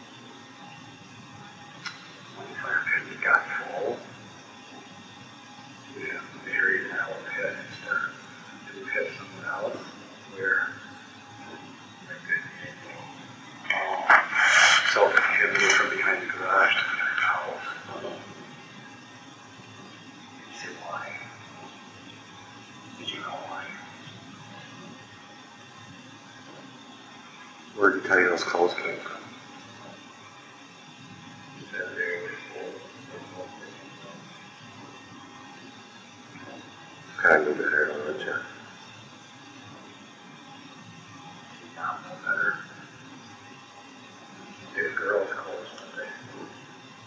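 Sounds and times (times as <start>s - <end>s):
tape hiss: 0.0s - 47.0s
faint hiss: 5.4s - 19.0s
muffled distorted voice talking: 13.7s - 18.3s, 31.8s - 33.7s.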